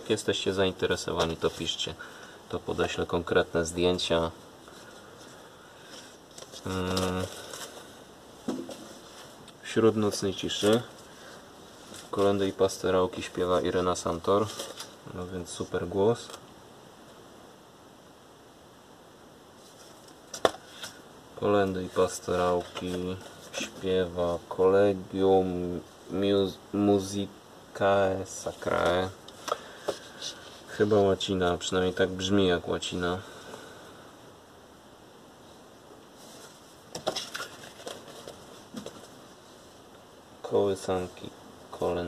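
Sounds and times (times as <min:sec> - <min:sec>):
cardboard record sleeves handled: 0:00.2 - 0:01.9, 0:05.9 - 0:11.1, 0:11.8 - 0:15.0, 0:21.6 - 0:23.9, 0:36.2 - 0:39.3.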